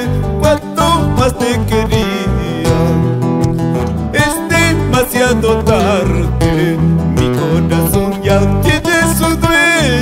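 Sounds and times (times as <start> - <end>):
acoustic guitars strumming: 0.0 - 10.0
bass line: 0.0 - 10.0.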